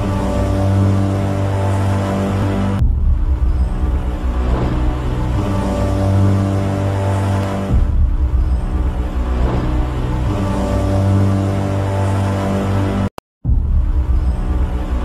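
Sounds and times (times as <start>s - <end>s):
dark droning background music: 0.0s - 15.0s.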